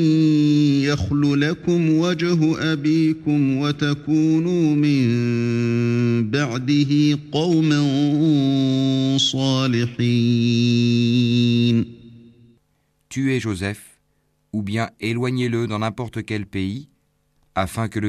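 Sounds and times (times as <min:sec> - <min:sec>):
man chanting recitation: 0:00.0 - 0:12.5, 0:13.1 - 0:16.9, 0:17.5 - 0:18.0.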